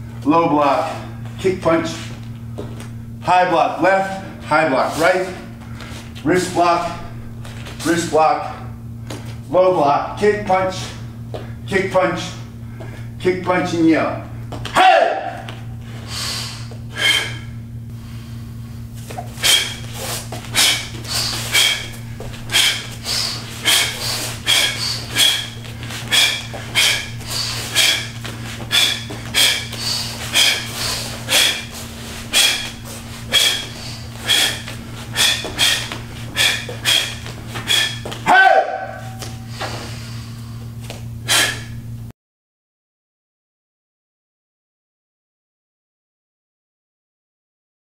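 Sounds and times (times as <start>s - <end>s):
low hum: 0.0s - 42.1s
person shouting: 14.7s - 15.5s, 38.2s - 39.2s
sharp exhalations: 16.0s - 38.2s, 41.3s - 41.8s.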